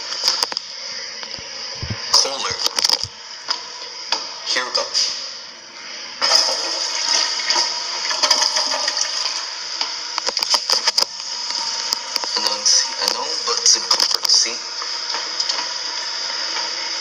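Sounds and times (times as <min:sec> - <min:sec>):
toilet flushing water rush: 0:06.0 - 0:09.7.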